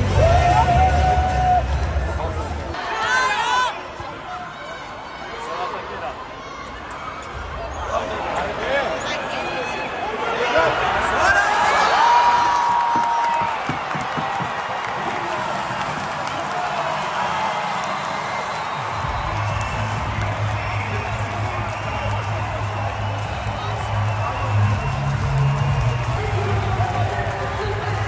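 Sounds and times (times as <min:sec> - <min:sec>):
loud music over sound system: 0:00.0 - 0:02.5, 0:19.2 - 0:28.0
crowd cheering and clapping: 0:00.0 - 0:03.8, 0:10.4 - 0:28.0.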